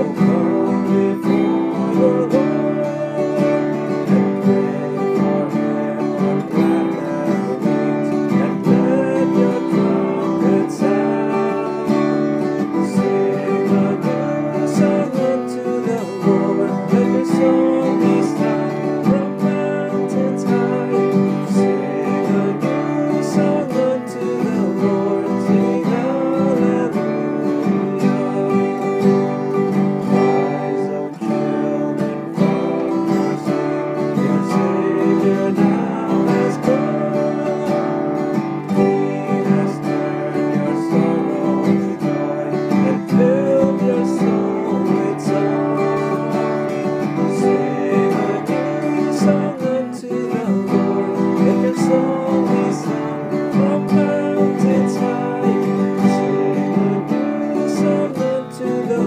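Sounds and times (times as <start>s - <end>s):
acoustic guitar strumming: 0.0s - 59.0s.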